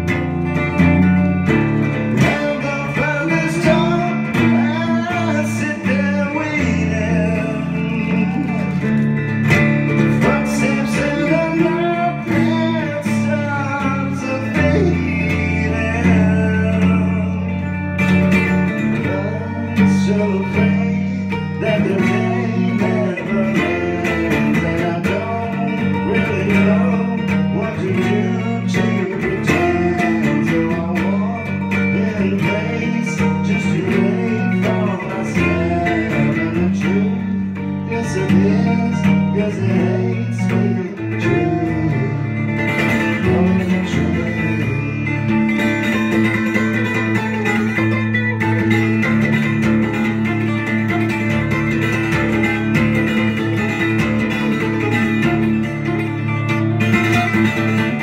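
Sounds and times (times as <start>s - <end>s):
cigar box guitar: 0.0s - 58.0s
man singing: 0.0s - 58.0s.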